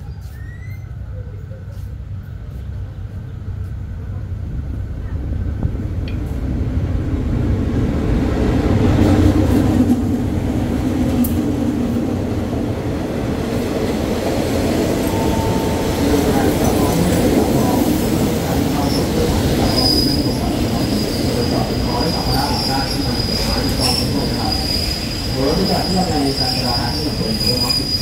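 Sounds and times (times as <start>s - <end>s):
train brake squeal: 0.0s - 1.2s, 19.6s - 20.4s, 21.0s - 28.0s
diesel locomotive engine: 0.0s - 28.0s
train coaches rumbling: 0.0s - 28.0s.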